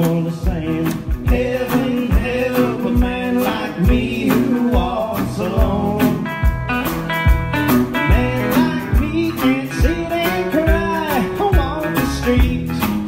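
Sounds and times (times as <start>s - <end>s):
drums: 0.0s - 13.0s
electric guitar: 0.0s - 13.0s
upright bass plucking: 0.0s - 13.0s.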